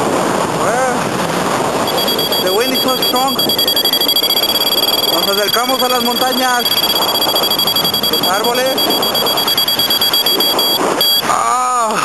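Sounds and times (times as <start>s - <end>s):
wind rushing over microphone: 0.0s - 11.1s
variometer beep tone: 1.8s - 11.3s.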